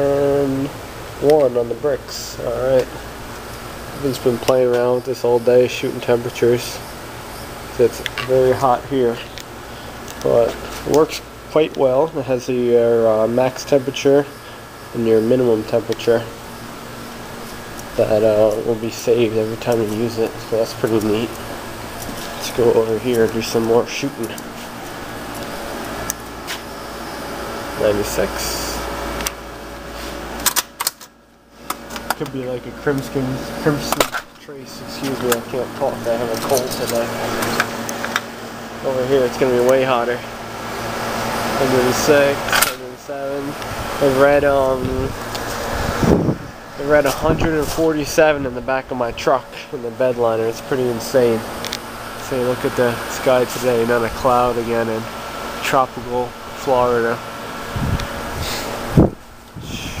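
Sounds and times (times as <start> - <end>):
background hum: 0.0 - 60.0
sharp handling clicks: 30.4 - 31.1, 42.5 - 42.8.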